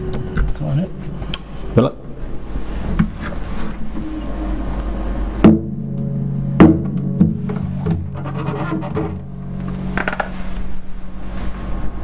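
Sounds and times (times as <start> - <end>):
acoustic guitar struck by hand: 5.4 - 10.7.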